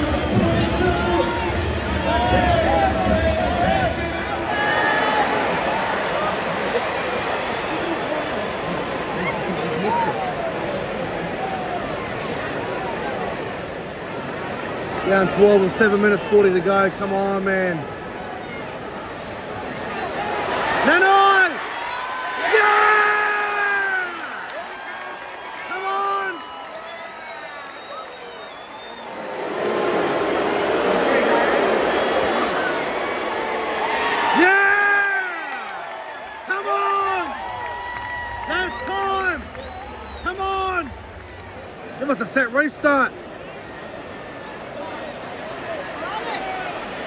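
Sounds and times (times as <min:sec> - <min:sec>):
fans shouting: 0:00.0 - 0:13.6, 0:15.0 - 0:47.0
stadium crowd cheering: 0:00.0 - 0:47.0.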